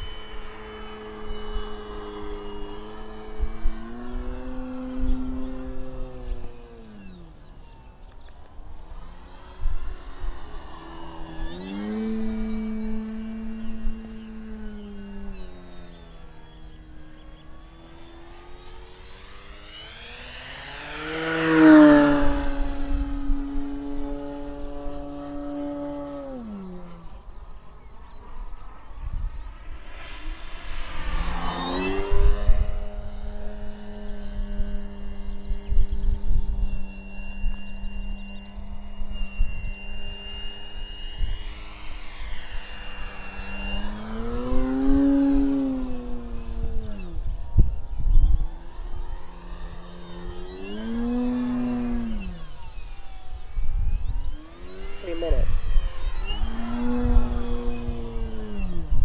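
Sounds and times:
model plane electric motor whine: 0.0s - 59.0s
wind rumbling on microphone: 20.8s - 59.0s.

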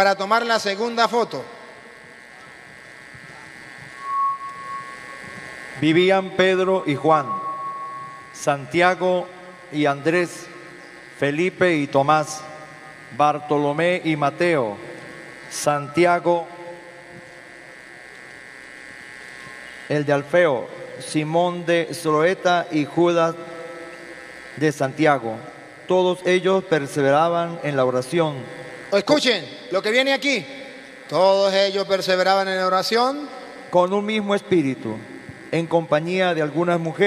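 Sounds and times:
electrical buzz: 0.0s - 37.0s
higher steady tone: 3.0s - 17.7s.

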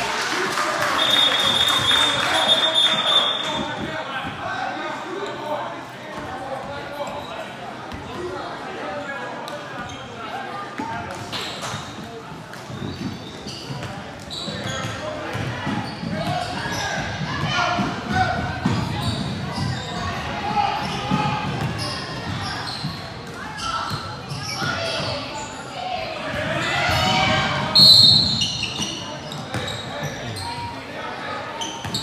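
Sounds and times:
referee's whistle blast: 1.0s - 3.5s, 27.7s - 28.6s.

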